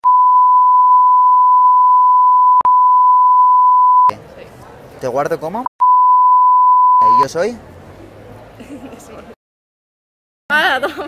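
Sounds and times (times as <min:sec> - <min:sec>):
high censor bleep: 0:00.0 - 0:04.1, 0:05.8 - 0:07.3.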